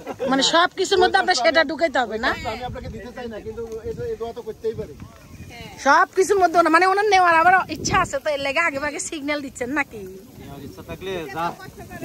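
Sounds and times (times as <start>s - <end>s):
people talking: 0.0s - 12.0s
surrounding conversation: 0.0s - 12.0s.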